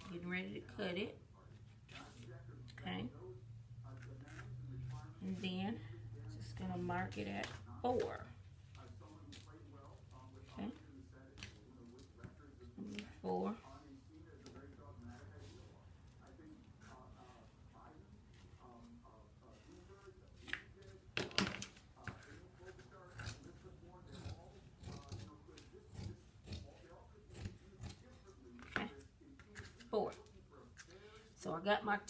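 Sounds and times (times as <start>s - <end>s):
shears snipping fabric: 23.1s - 28.0s.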